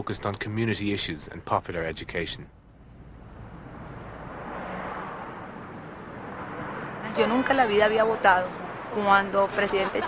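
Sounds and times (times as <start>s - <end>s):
outdoor street noise: 0.0s - 10.0s
vehicle passing by: 3.0s - 10.0s.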